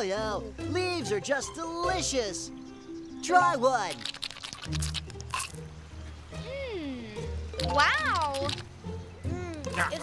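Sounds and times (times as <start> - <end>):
soft cartoon background music: 0.0 - 10.0.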